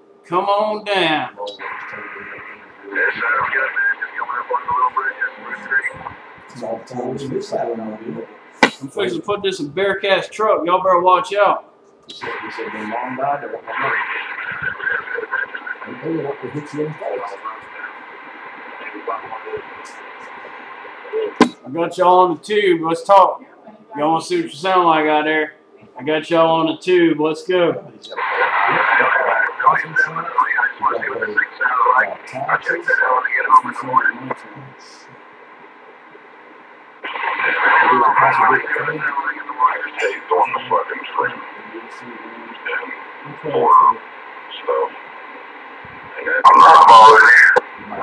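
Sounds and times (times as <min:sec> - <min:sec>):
static hiss: 0:00.0 - 0:48.0
voice over radio speaker: 0:00.3 - 0:10.3, 0:12.1 - 0:22.3, 0:27.6 - 0:35.2, 0:37.0 - 0:45.1, 0:45.8 - 0:48.0.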